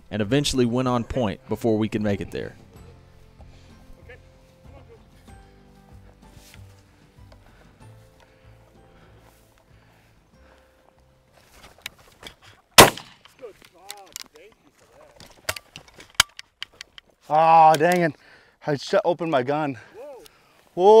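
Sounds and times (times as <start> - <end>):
soft background music: 0.0 - 12.2
quieter gunshot crack: 12.8 - 13.2
shotgun shot: 12.8 - 13.2
sharp clicks: 15.4 - 17.1.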